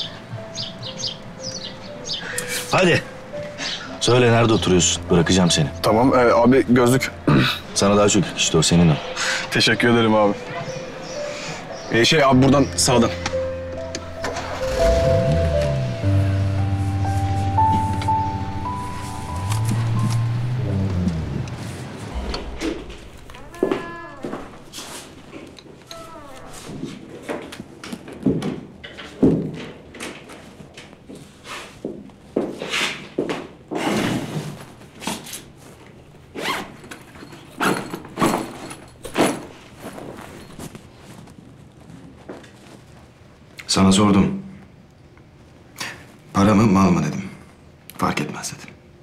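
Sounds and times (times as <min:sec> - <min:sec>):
background music: 0:00.0 - 0:24.7
irregular knocks and thuds: 0:20.9 - 0:24.8.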